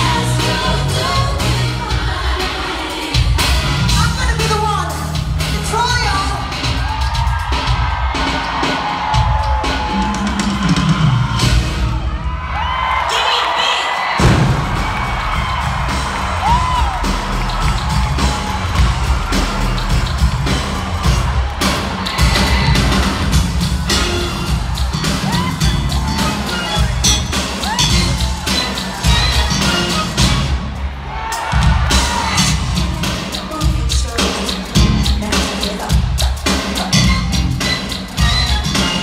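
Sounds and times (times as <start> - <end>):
dance-pop concert music: 0.0 - 39.0
fans whooping and cheering: 6.0 - 39.0.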